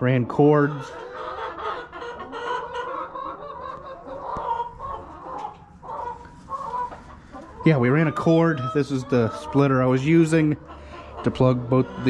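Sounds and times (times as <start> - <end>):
hens clucking: 0.0 - 12.0.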